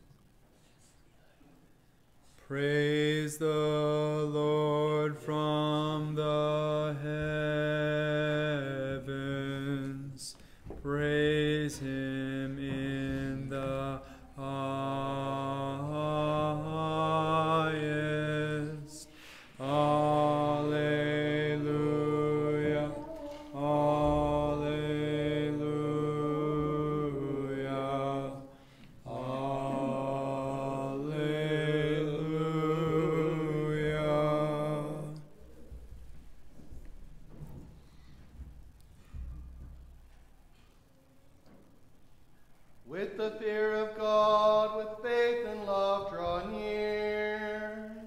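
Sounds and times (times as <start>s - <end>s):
choir chanting liturgical chant: 2.5s - 35.5s, 42.9s - 48.0s.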